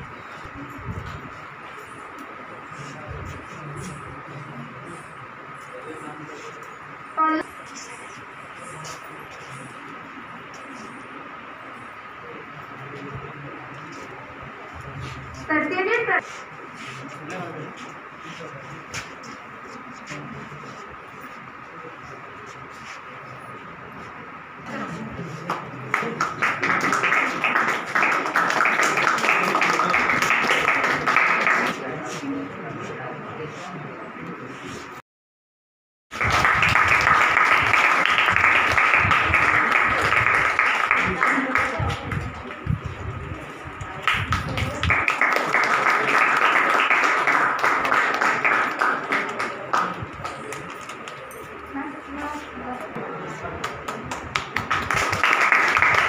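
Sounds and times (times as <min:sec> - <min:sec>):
people clapping: 0:24.7 - 0:32.3, 0:36.1 - 0:51.5, 0:53.0 - 0:56.0.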